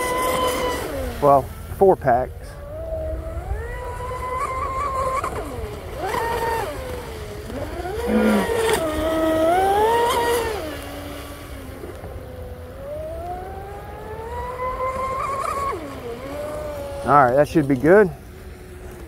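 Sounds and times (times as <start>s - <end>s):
electric boat motor whining: 0.0s - 19.0s.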